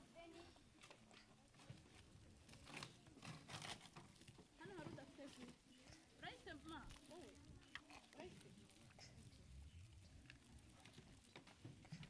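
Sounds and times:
sweet wrappers crinkling: 2.4 - 12.0.

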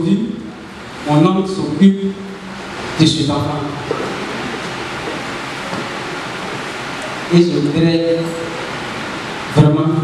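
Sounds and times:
steady rushing noise: 0.0 - 10.0.

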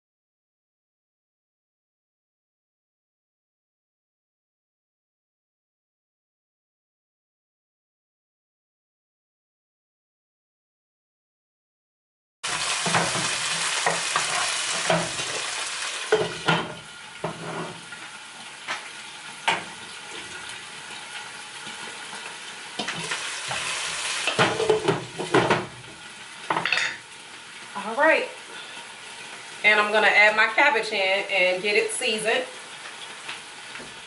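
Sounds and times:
vegetables sizzling in a frying pan: 12.4 - 34.0.

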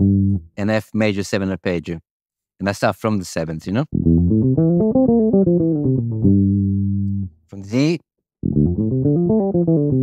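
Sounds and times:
electric bass arpeggio: 0.0 - 0.6, 3.9 - 7.4, 8.4 - 10.0.

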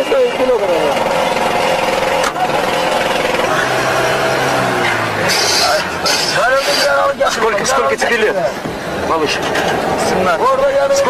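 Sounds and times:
vehicle engine and road drone: 0.0 - 11.0.

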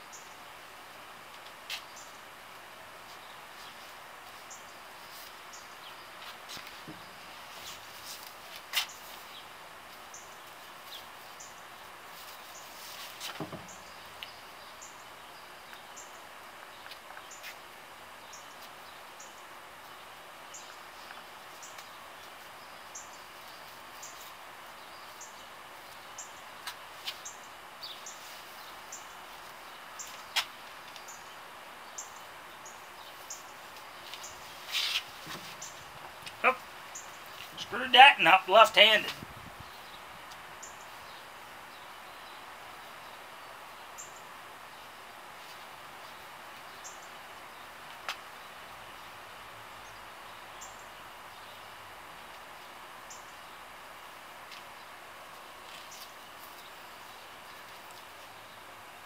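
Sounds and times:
outdoor background hiss: 0.0 - 59.0.

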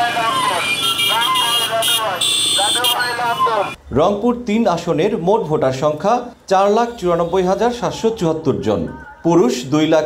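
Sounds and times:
men calling out: 0.0 - 3.8.

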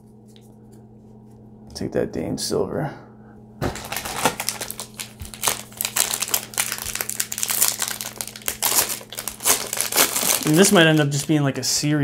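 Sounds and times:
wrapper tearing and crinkling: 3.6 - 11.5.

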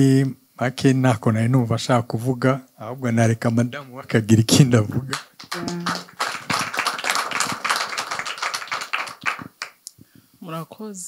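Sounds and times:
audience applauding: 5.1 - 9.8.

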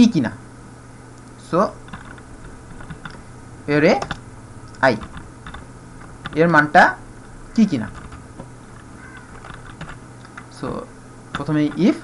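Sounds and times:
person speaking: 0.0 - 0.5, 1.3 - 12.0.

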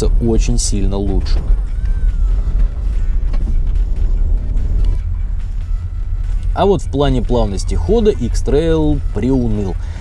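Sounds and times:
background music: 0.0 - 10.0
road and engine rumble: 0.0 - 10.0.

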